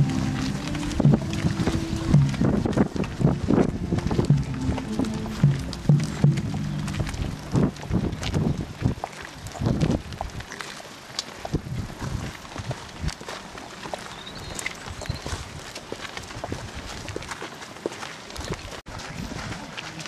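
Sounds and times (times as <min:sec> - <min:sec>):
procession band playing low notes: 0:00.0 - 0:08.2
footsteps on cinder path: 0:00.0 - 0:20.0.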